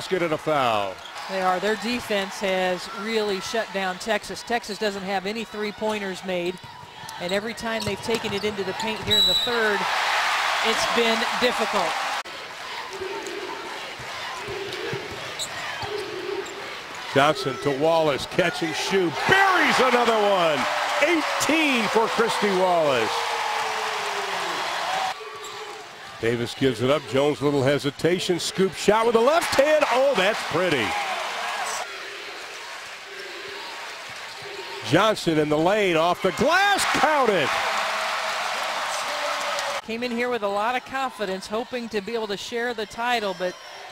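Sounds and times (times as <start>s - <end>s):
arena crowd hubbub: 0.0s - 43.9s.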